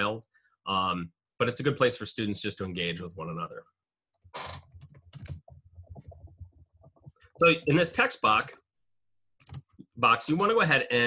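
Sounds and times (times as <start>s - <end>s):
typing on computer keyboard: 4.2s - 7.2s, 9.4s - 9.8s.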